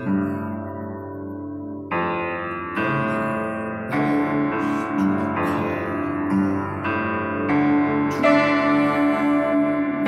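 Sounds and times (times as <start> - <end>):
instrumental music with ringing chords: 0.0 - 10.0.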